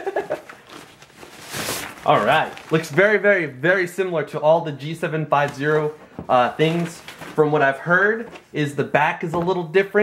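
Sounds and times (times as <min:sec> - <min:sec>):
person laughing: 0:00.0 - 0:00.6.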